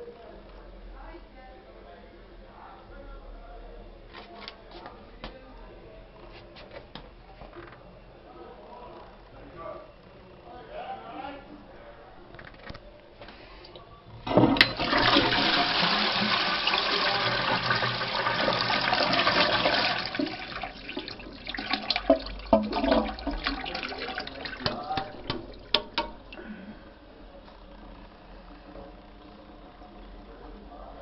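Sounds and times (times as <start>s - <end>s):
toilet flush click: 14.2s - 26.3s
toilet water rushing: 14.2s - 26.4s.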